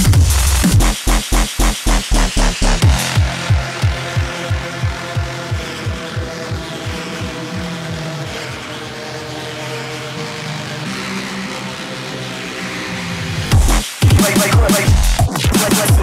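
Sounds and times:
sustained synth chords: 2.0s - 13.9s.

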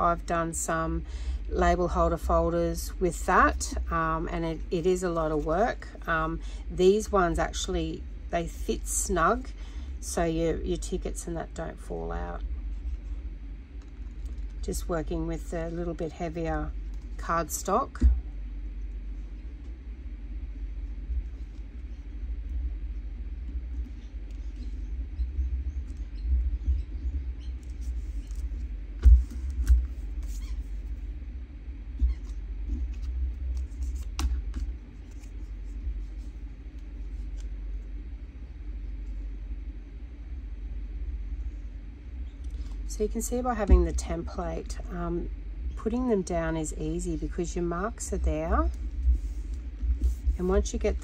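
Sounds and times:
steady low rumble: 0.0s - 51.0s
paper rustling: 32.1s - 37.5s.

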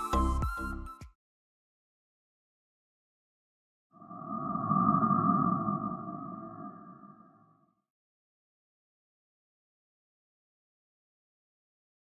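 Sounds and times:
low rumble: 4.0s - 7.7s.

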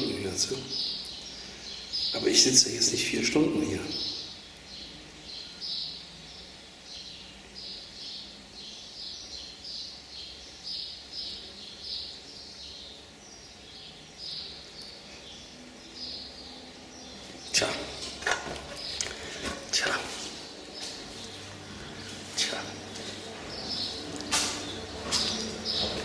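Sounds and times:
bird chirping: 0.0s - 26.0s.

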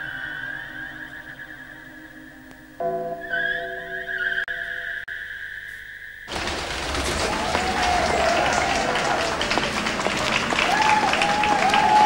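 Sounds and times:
thin wavering tone: 0.0s - 5.5s
crowd clapping: 6.3s - 12.0s.

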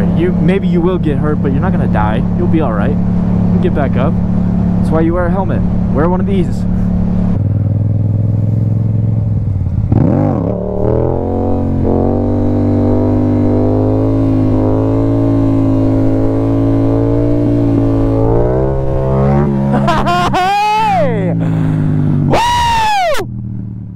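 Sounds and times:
motorcycle engine revving: 0.0s - 23.9s.

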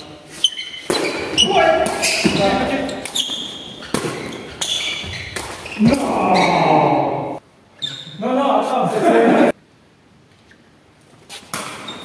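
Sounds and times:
hissing echo in hall: 0.0s - 10.2s.

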